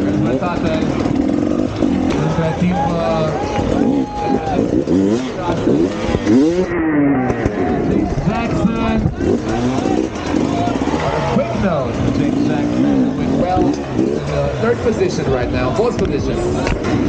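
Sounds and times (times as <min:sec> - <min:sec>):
dirt bike engine revving: 0:00.0 - 0:17.0.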